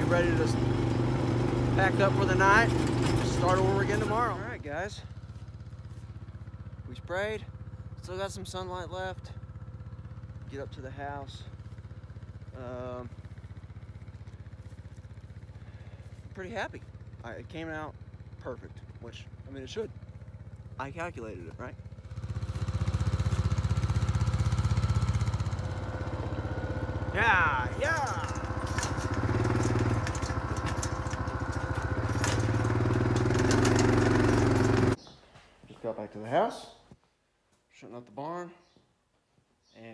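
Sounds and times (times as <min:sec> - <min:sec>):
small engine idling: 0:00.0 - 0:35.2.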